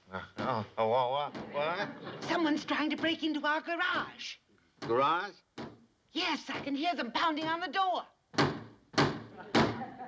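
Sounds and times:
pounding on garage door: 2.2 - 5.9, 6.5 - 9.8.

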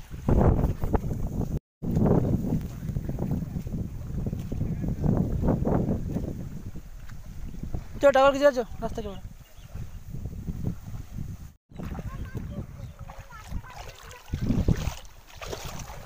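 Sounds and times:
wind buffeting microphone: 0.0 - 16.0
floodwater flowing: 1.8 - 16.0.

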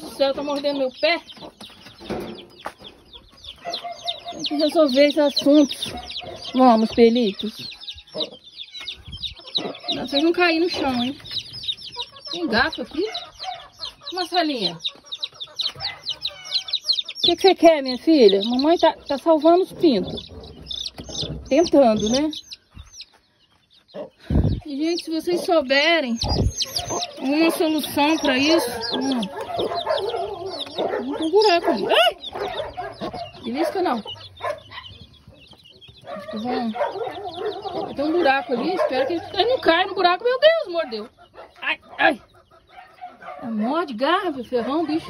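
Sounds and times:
chicks peeping: 0.0 - 45.0
hen clucking: 0.0 - 45.0.

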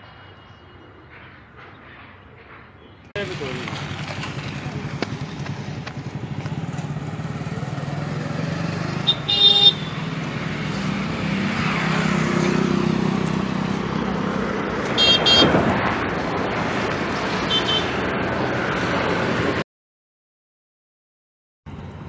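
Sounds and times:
road traffic passing: 0.0 - 19.6, 21.7 - 22.0
car horn honking: 9.0 - 10.0, 15.0 - 15.6, 17.5 - 18.0.

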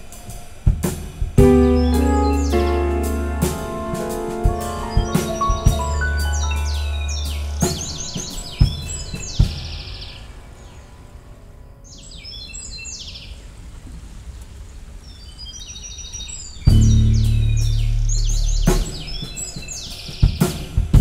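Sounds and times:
deep sustained note: 1.4 - 9.3
loud deep bass note: 1.4 - 9.3, 16.7 - 19.1
sharp drum hits: 1.4 - 9.8
high chirping birdsong: 1.4 - 11.0, 11.8 - 13.5, 15.0 - 20.5.

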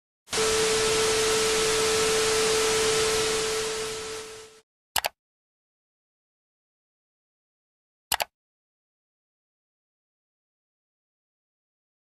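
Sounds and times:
static hiss: 0.3 - 4.6
steady tone: 0.3 - 4.6.

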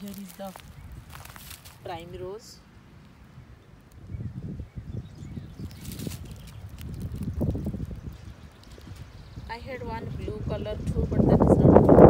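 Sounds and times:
faint crackles: 0.0 - 2.0, 2.9 - 4.3, 5.6 - 9.5
wind buffeting the microphone: 0.0 - 12.0.

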